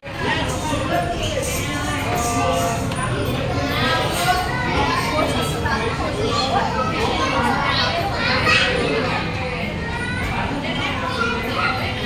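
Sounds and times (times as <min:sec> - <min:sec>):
indistinct chatter: 0:00.0 - 0:12.0.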